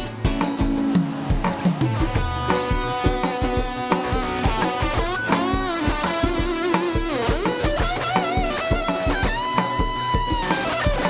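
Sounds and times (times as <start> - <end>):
drums steady beat: 0.0 - 11.0
electric guitar lead line: 0.0 - 11.0
live band: 0.0 - 11.0.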